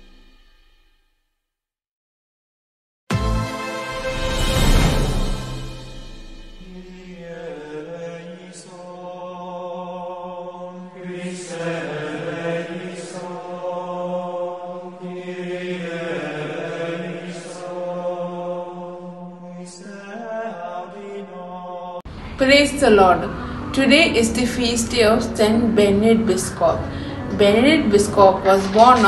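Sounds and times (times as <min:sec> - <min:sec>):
chanted vocal line: 0:06.5 - 0:29.0
steady low drone: 0:22.1 - 0:29.0.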